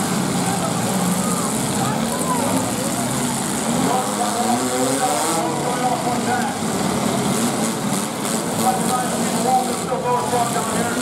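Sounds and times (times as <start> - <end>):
car engines running hard: 0.0 - 11.0
voices: 0.4 - 6.7, 8.5 - 11.0.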